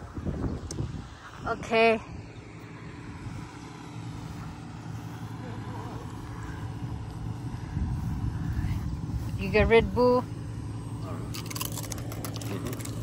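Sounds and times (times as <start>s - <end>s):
low motor drone: 0.0s - 13.0s.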